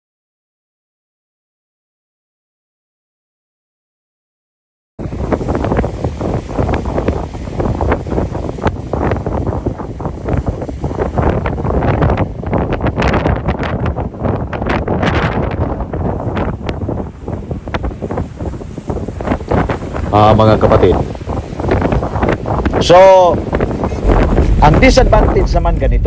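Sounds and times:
wind buffeting microphone: 5.0s - 26.0s.

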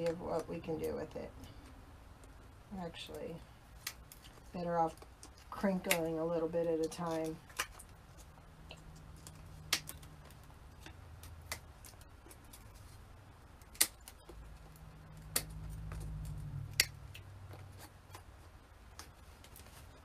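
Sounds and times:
low hum: 7.9s - 19.0s.

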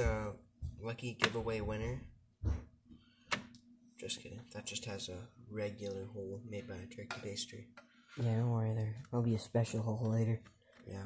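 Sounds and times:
soft low thump: 1.5s - 2.8s.

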